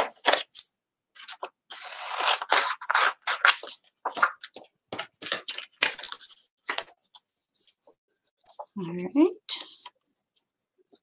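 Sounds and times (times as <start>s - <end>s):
rustling of card and plastic: 2.3s - 8.8s.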